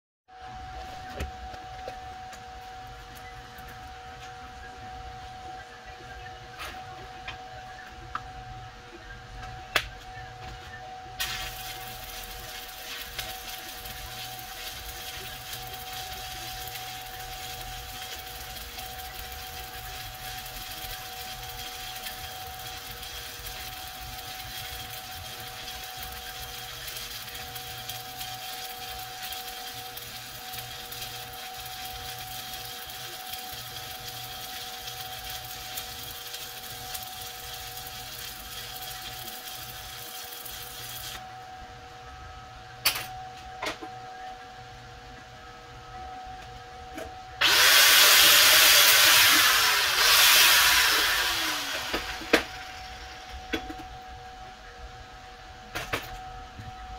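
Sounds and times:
welding arc crackling: 11.2 - 41.2, 47.4 - 54.1.

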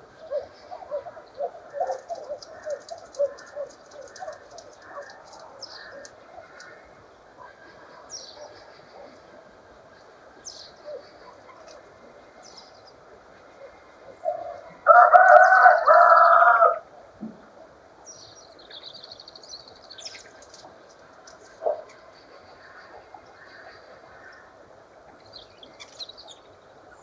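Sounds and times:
songbirds chirping and whistling: 0.0 - 16.7, 18.0 - 27.0
rooster crowing: 14.8 - 16.8.

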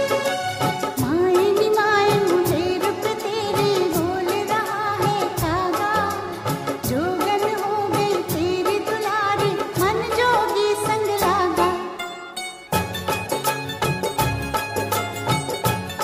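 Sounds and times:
percussion beat: 0.0 - 11.4, 12.7 - 16.0
instrumental backing: 0.0 - 16.0.

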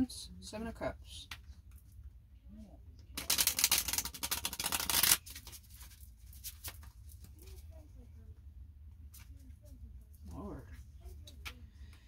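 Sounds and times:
cards being shuffled: 3.2 - 7.6.

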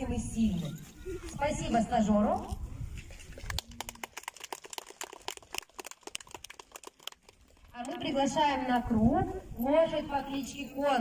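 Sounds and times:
scattered hand clapping: 3.4 - 8.0.

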